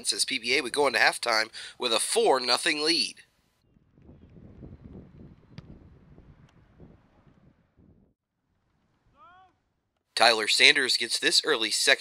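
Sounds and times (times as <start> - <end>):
wind buffeting microphone: 3.6 - 8.2.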